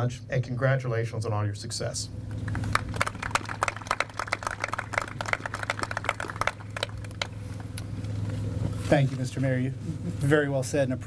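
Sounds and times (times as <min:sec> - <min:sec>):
steady low hum: 0:00.0 - 0:11.0
people applauding: 0:02.4 - 0:07.4.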